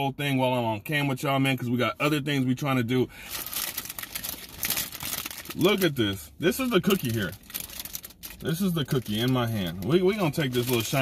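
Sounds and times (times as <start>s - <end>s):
plastic bag crinkling: 3.2s - 11.0s.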